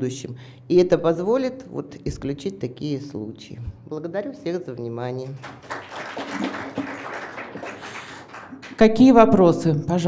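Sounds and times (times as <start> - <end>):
audience applauding: 5.3 - 8.8.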